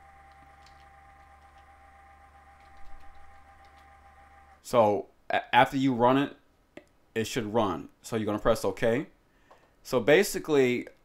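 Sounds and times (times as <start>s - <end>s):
low electrical hum: 0.0s - 11.0s
keyboard typing clicks: 0.3s - 1.7s, 2.6s - 3.9s.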